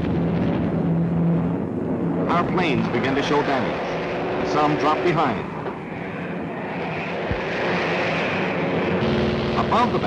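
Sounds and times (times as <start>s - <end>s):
propeller engines droning: 0.0s - 10.0s.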